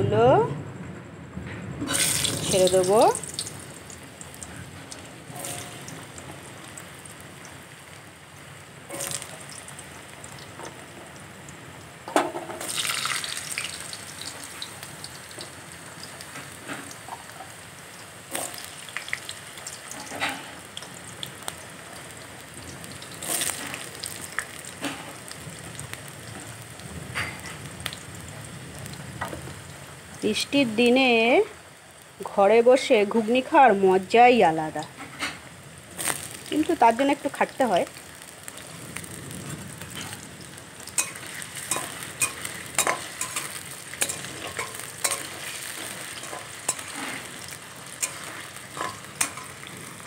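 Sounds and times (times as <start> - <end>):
crackling bursts in hot oil: 1.8 - 50.0
potatoes sizzling in oil: 1.8 - 50.0.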